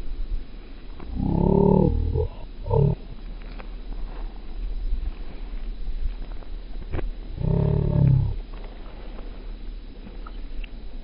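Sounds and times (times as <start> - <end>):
person's wavering vocal sound: 1.1 - 3.0.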